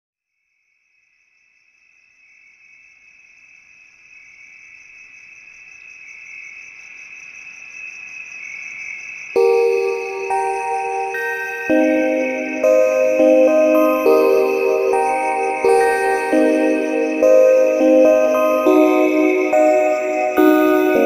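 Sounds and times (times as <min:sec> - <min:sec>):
cricket chirring: 0:00.6 - 0:21.0
ambient music: 0:09.4 - 0:21.0
bell-like mallet notes: 0:09.4 - 0:21.0.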